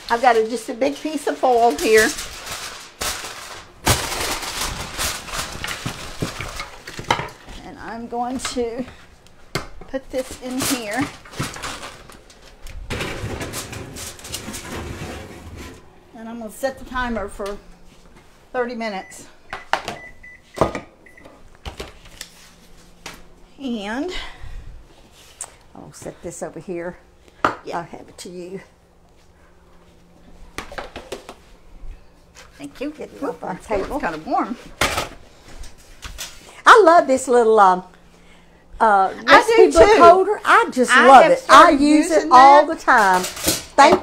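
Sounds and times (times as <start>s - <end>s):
aluminium foil crinkling: 0.0s - 7.1s, 10.1s - 12.8s
kitchen timer beeps: 19.0s - 21.3s.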